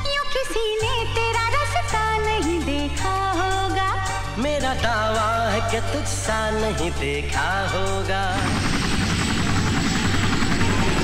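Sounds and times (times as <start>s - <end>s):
helicopter rotor chopping: 6.9s - 11.0s
high turbine whine: 7.1s - 11.0s.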